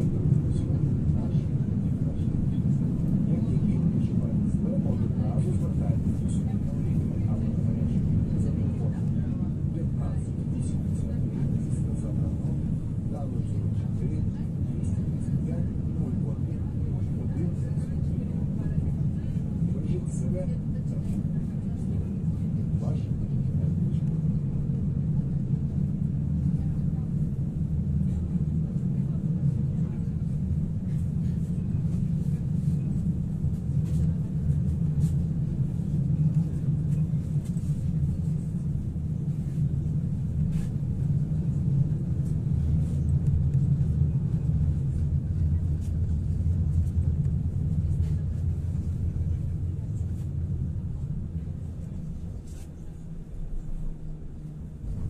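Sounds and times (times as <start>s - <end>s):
tram rumbling on track: 0.0s - 55.0s.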